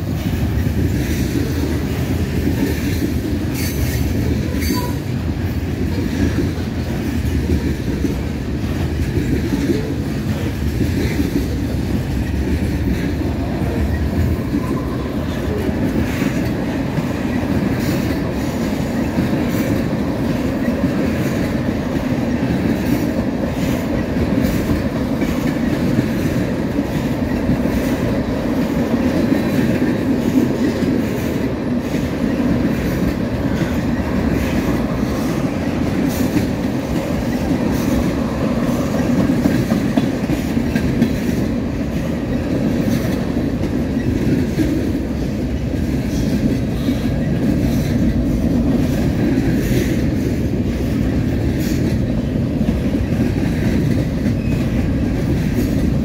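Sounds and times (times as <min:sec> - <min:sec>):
steel wheels rumbling on rail: 0:00.0 - 0:56.0
wheels clacking over rail joints: 0:00.0 - 0:56.0.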